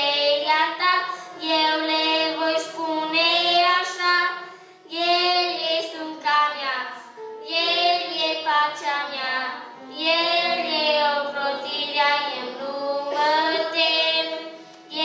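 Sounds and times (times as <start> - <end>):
boy singing into a microphone: 0.0 - 15.0.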